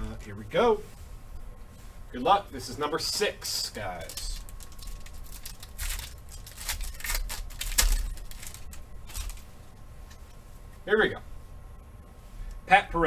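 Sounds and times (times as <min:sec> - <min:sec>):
foil wrapper crackling and rustling: 0:03.5 - 0:09.6.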